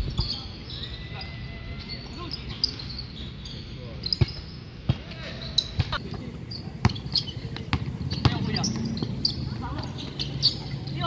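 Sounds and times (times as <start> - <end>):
players' voices: 0.1 - 11.0.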